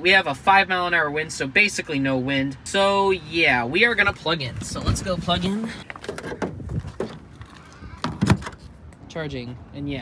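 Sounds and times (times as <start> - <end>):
plastic connector clunks and knocks: 5.9 - 7.2.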